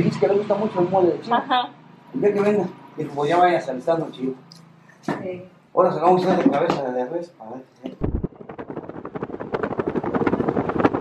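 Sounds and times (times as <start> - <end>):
road and wind noise fluttering: 8.0 - 11.0.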